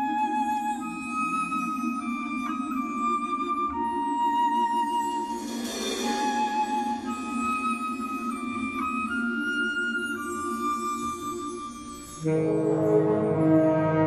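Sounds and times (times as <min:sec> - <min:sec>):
wind orchestra slow melody: 0:00.0 - 0:14.0
cymbal swell: 0:05.0 - 0:09.5.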